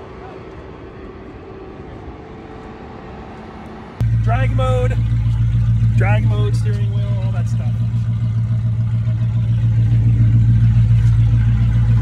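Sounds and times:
low rumble of vehicle engines: 0.0s - 12.0s.

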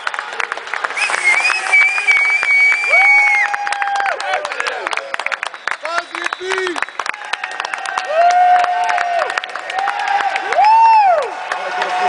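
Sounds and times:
crowd cheering and clapping: 0.0s - 12.0s.

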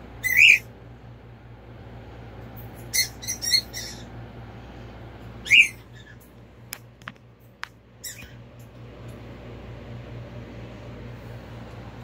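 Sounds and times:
high-pitched chirping animal calls: 0.2s - 0.7s, 2.8s - 4.2s, 5.4s - 6.3s, 8.0s - 8.4s.

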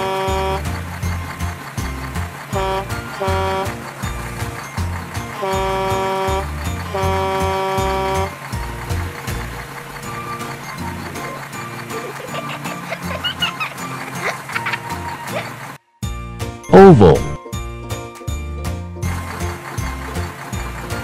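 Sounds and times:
cartoon horn tooting: 0.0s - 0.7s, 2.6s - 3.8s, 5.4s - 8.4s, 16.7s - 17.4s
upbeat music with pulsing bass: 16.7s - 17.4s.

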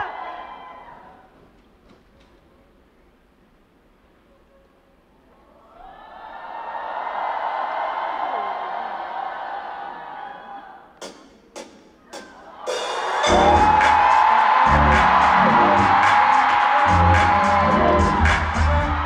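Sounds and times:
crowd screaming and cheering: 0.0s - 1.3s, 5.6s - 11.0s, 12.2s - 19.0s
pop music with heavy bass: 13.2s - 19.0s.

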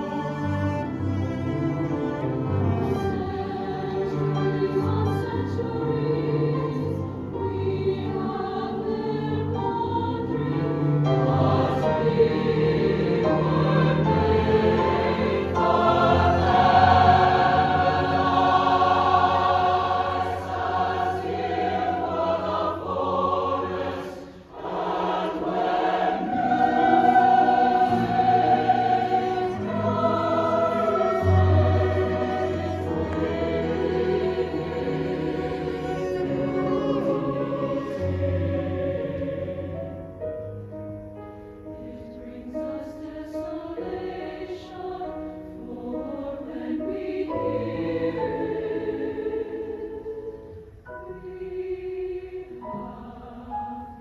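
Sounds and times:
choir singing: 0.0s - 40.7s, 41.6s - 54.0s
cello: 0.0s - 54.0s
piano: 0.0s - 54.0s.

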